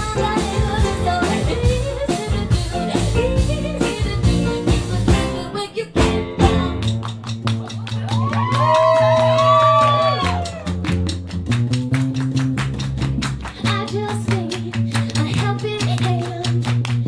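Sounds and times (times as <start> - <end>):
upright bass notes: 0.0 - 17.0
hand claps: 6.8 - 17.0.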